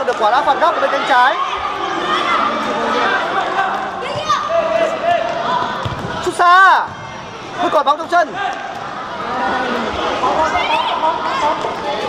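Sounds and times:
voices calling and chattering: 0.0s - 12.0s.

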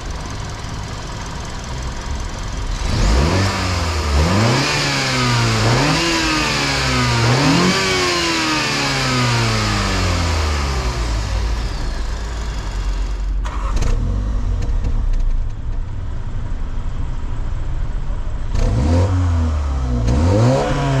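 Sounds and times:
car engine revving: 2.2s - 15.1s, 18.4s - 21.0s.

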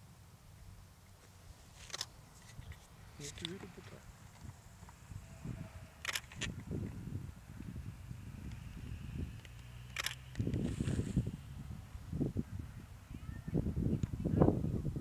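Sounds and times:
low irregular rumble: 0.0s - 15.0s
camera shutter clicks: 6.0s - 6.6s, 9.4s - 10.6s.

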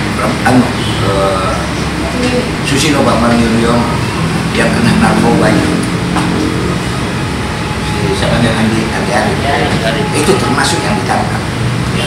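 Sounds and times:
vehicle engine running: 0.0s - 10.6s.

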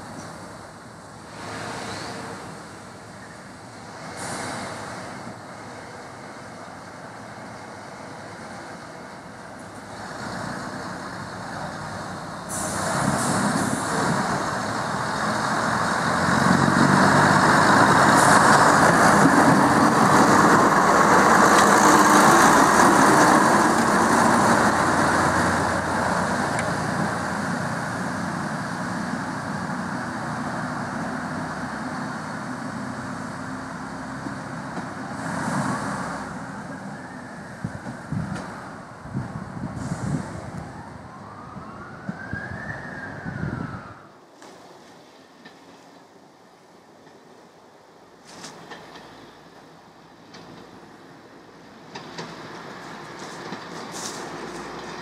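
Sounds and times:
train diesel engines running: 0.0s - 55.0s.

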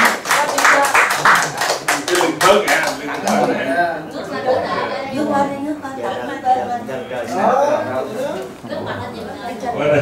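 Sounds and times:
group clapping: 0.0s - 3.7s
voices in room: 0.0s - 10.0s.

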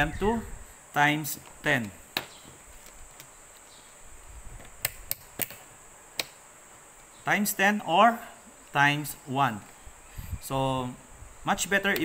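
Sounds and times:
handling rustle: 2.3s - 4.8s.

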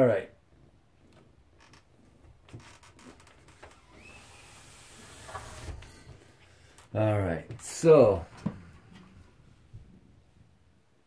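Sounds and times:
high squeak: 3.8s - 5.9s.

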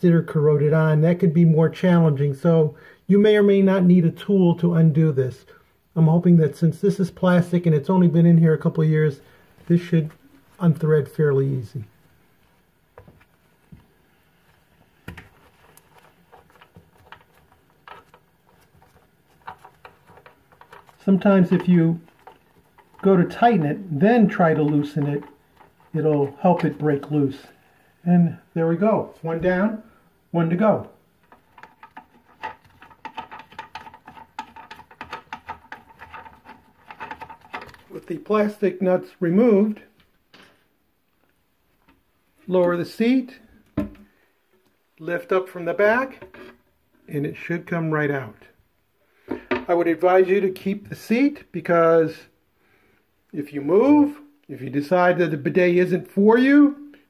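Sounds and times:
plastic clicks and scrapes on porcelain: 15.2s - 23.1s, 31.2s - 37.9s.

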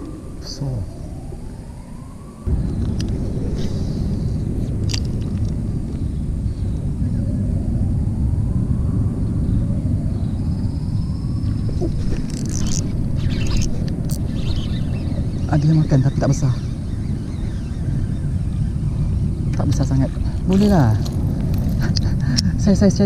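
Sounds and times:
faint rising tone: 0.0s - 4.8s
wind rumble on microphone: 0.0s - 23.0s.

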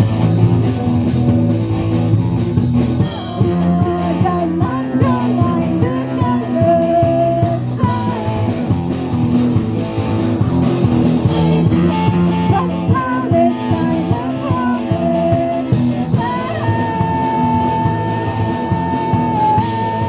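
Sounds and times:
live rock band playing: 0.0s - 20.0s
woman singing: 3.1s - 8.7s, 11.3s - 20.0s.

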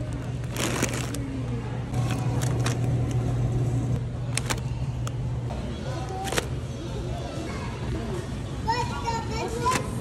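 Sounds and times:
plastic packaging crackling: 0.0s - 1.4s, 4.3s - 4.7s
steady low hum: 0.0s - 8.6s.

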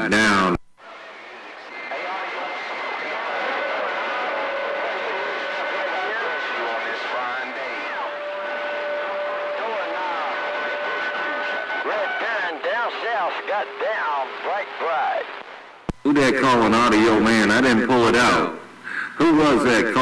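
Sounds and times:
garbled radio voices: 0.0s - 20.0s
radio static hiss: 0.0s - 20.0s
radio whistle tones: 0.8s - 16.6s.

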